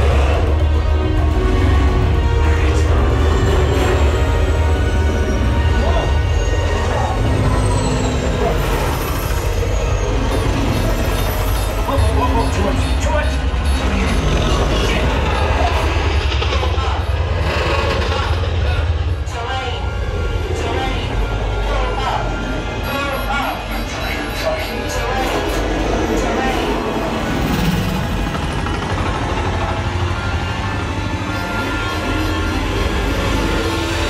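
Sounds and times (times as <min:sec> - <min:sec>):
deep bass rumble: 0:00.0 - 0:21.6
film music: 0:00.0 - 0:34.0.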